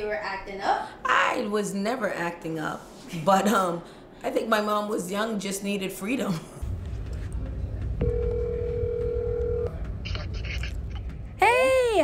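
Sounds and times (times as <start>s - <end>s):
telephone ringback tone: 8.0s - 9.8s.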